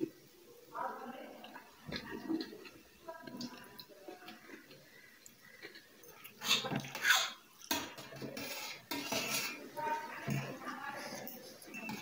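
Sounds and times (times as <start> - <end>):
cutlery scraping steel plate: 6.5 - 9.6.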